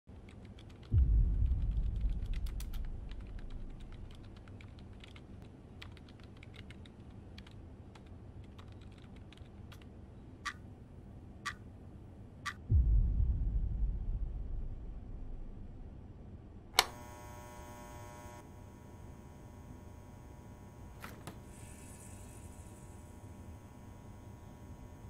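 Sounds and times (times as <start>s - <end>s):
deep low boom: 0.9s - 4.2s, 12.7s - 16.7s
laptop keyboard clicks: 16.8s - 17.0s.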